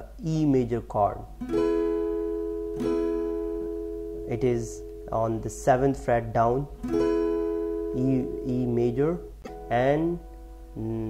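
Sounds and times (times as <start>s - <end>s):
acoustic guitar chord ringing: 1.2s - 11.0s.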